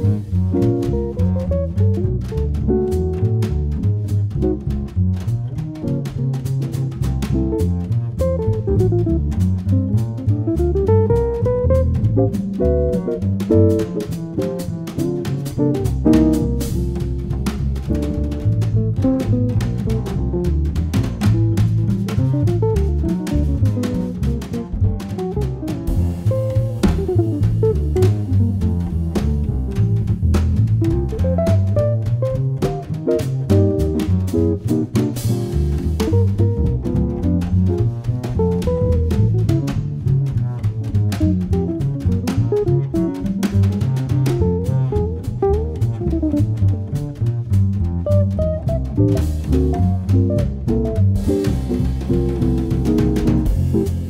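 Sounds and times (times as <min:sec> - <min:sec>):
drum kit: 0:00.0 - 0:54.0
jazz guitar: 0:00.0 - 0:54.0
plucked double bass: 0:00.0 - 0:54.0.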